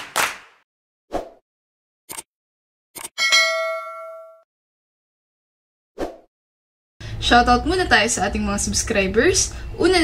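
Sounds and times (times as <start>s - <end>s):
bright bell ding: 3.2s - 4.4s.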